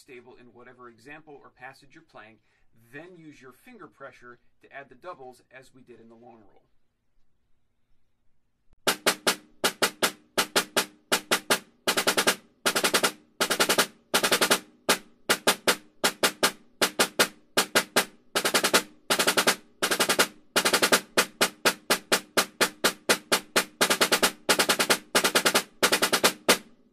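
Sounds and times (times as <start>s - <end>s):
snare drum rolls: 8.8s - 26.7s.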